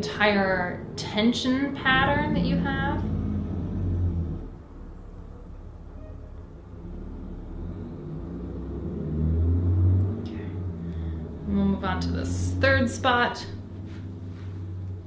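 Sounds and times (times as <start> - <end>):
low rumble: 0.0 - 15.0.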